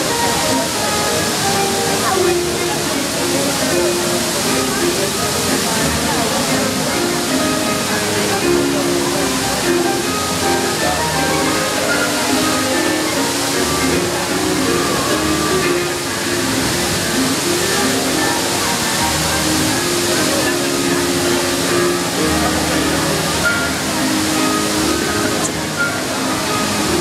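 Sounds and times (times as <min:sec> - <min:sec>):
crowd talking: 0:00.0 - 0:27.0
fountain water jets splashing: 0:00.0 - 0:27.0
music playing: 0:00.0 - 0:27.0.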